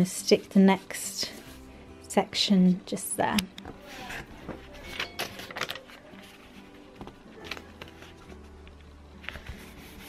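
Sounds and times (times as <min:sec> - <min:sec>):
paper rustling and tapping: 0:03.7 - 0:08.4.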